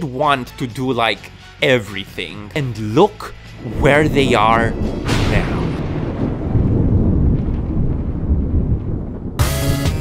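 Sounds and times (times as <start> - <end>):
deep thunder rumble: 3.3 - 10.0.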